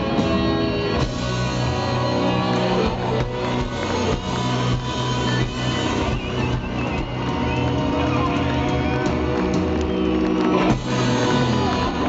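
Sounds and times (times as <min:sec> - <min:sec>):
drums: 0:00.0 - 0:12.0
electric guitars: 0:00.0 - 0:12.0.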